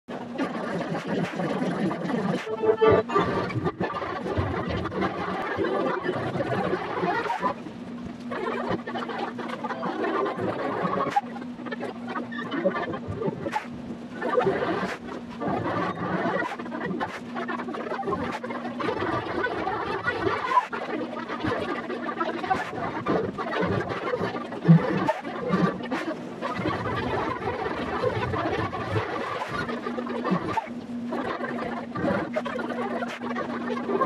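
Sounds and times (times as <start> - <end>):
steady low hum: 0.1 - 34.0
jumbled chatter of voices: 0.2 - 34.0.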